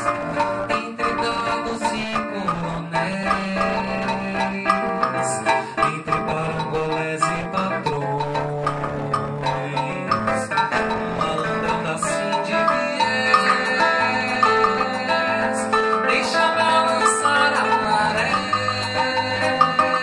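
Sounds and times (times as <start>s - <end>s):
light hand percussion: 0.0s - 20.0s
man singing into microphone: 0.0s - 20.0s
strummed acoustic guitar: 0.0s - 20.0s.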